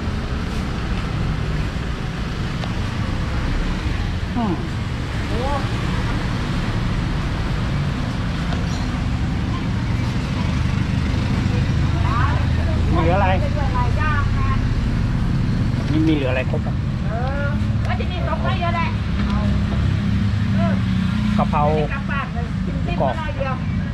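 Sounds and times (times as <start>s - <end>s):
street traffic rumble: 0.0s - 23.9s
people speaking: 4.4s - 5.8s, 15.9s - 19.6s.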